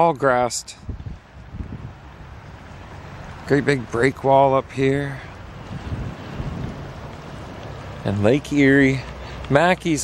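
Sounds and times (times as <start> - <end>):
wind rumble on microphone: 0.7 - 10.0.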